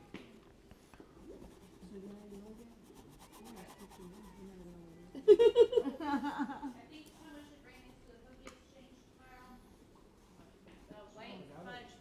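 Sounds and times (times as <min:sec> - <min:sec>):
murmur of voices: 0:00.0 - 0:08.0
soft scratching: 0:00.7 - 0:05.1.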